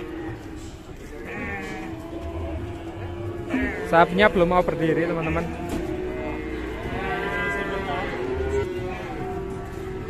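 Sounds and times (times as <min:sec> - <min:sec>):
cow mooing: 0:00.0 - 0:10.0.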